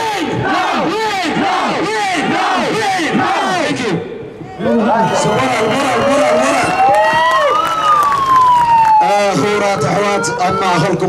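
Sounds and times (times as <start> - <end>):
crowd voices: 0.0 - 11.0
siren rising and falling: 4.8 - 11.0.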